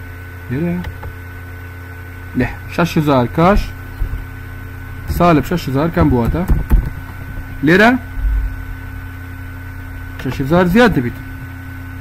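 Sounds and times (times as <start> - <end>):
electrical hum: 0.0 - 12.0
low rumble: 3.4 - 11.4.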